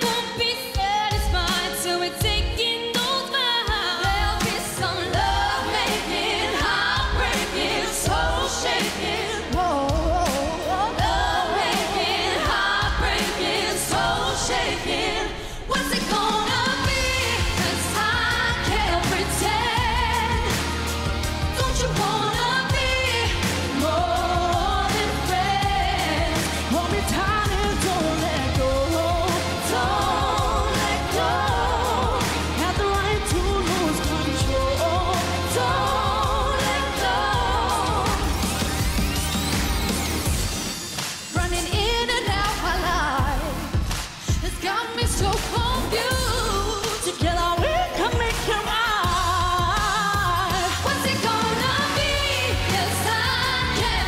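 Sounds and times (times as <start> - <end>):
woman singing with vibrato: 0.0 - 20.8, 21.5 - 38.5, 41.3 - 43.7, 44.3 - 54.0
pop backing with heavy bass: 0.0 - 54.0.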